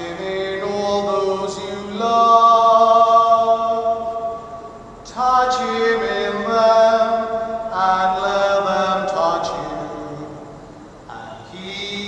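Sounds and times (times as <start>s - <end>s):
slow devotional chant: 0.0s - 12.0s.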